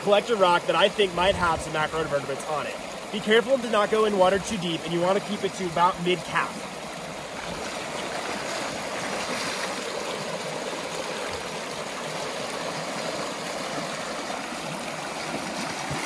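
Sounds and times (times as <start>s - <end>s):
creek water rushing over rocks: 0.0s - 16.0s.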